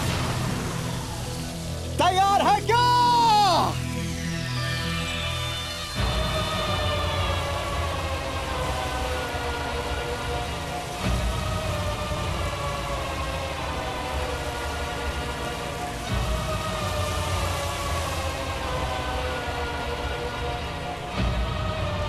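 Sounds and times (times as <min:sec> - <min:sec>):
dramatic orchestral film score: 0:00.0 - 0:22.0.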